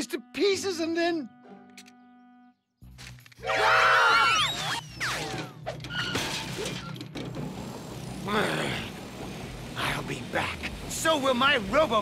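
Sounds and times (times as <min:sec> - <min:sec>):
music: 0:00.0 - 0:12.0
cartoon machine crashing and clattering: 0:04.3 - 0:07.6.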